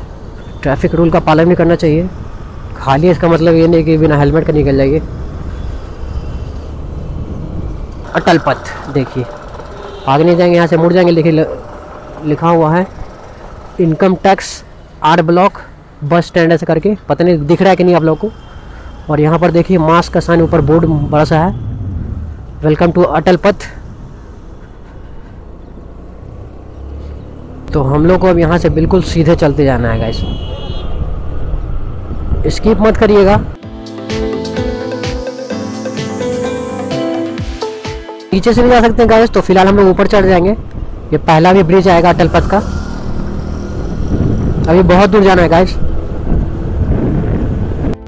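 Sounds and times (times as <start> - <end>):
motorbike engine riding: 2.1 - 15.1, 38.7 - 48.0
wind noise: 30.2 - 33.6, 42.2 - 48.0.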